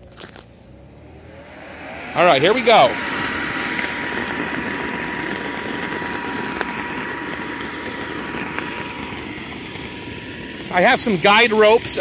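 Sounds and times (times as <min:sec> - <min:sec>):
electric blower running: 0:00.0 - 0:12.0.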